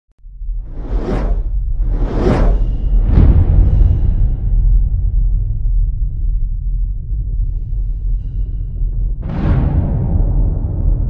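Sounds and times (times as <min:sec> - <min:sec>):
deep low rumble: 0:00.2 - 0:11.0
whoosh: 0:00.4 - 0:05.8.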